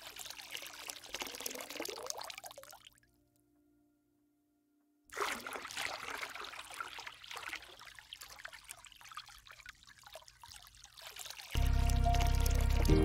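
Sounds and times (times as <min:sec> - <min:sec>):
water trickling down rock: 0:00.0 - 0:03.0, 0:06.0 - 0:13.0
ambient music with held chord: 0:11.6 - 0:13.0.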